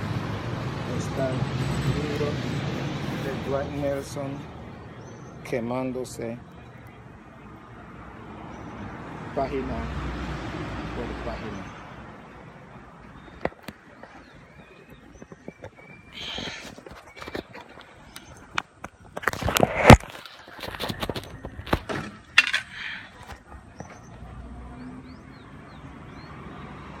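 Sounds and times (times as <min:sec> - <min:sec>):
phone being handled: 0:15.2 - 0:23.4.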